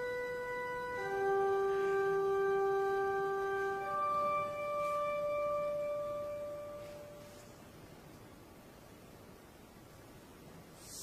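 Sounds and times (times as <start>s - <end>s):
pure held pitch note: 0.0s - 7.6s.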